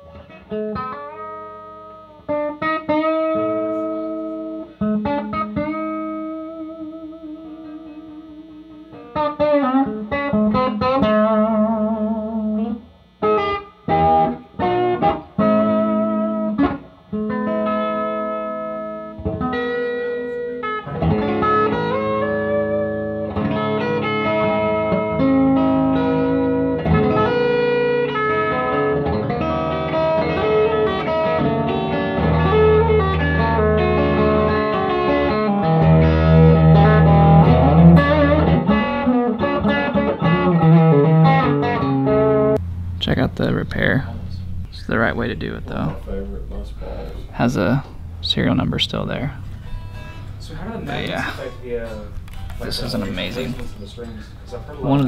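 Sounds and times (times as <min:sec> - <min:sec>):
electric guitar through an amp: 0:00.0 - 0:55.0.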